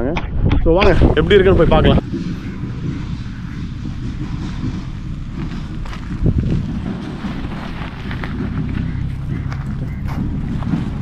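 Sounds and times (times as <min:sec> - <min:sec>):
wind buffeting microphone: 0:00.0 - 0:11.0
wind bump on microphone: 0:00.0 - 0:11.0.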